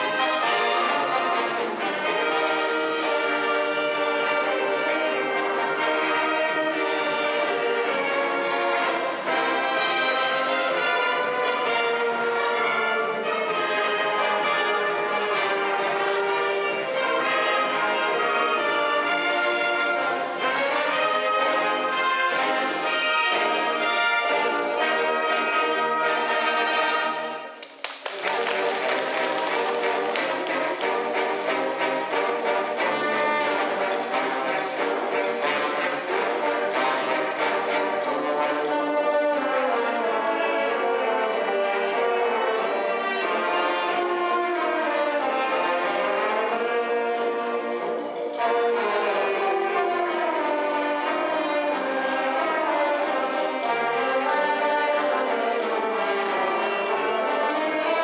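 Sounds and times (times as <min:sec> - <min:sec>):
brass band playing: 0:00.0 - 0:58.0.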